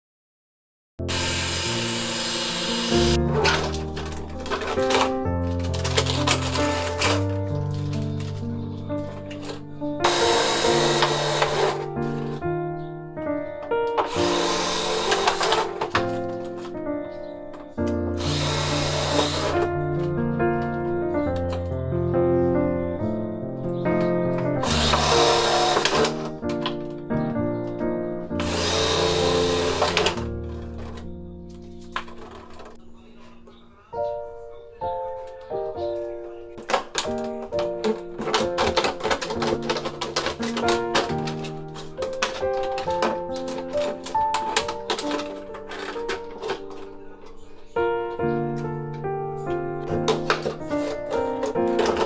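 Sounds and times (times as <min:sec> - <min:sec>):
cordless drill boring plastic: 0:01.0 - 0:03.7, 0:10.0 - 0:11.8, 0:14.0 - 0:15.9, 0:18.2 - 0:19.7, 0:24.6 - 0:26.2, 0:28.4 - 0:30.2.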